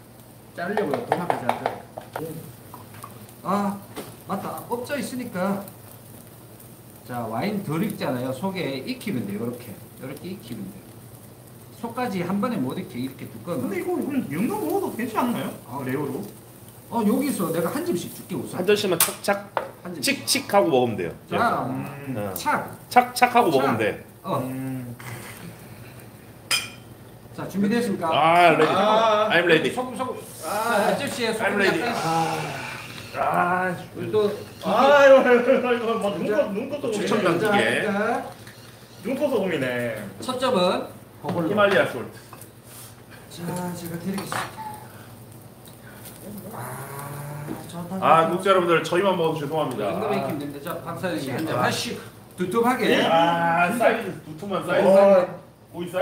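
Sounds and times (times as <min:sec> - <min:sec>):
man talking: 0:11.8 - 0:25.0, 0:27.4 - 0:38.3, 0:48.0 - 0:56.0
man speaking: 0:16.9 - 0:25.0, 0:27.4 - 0:38.3.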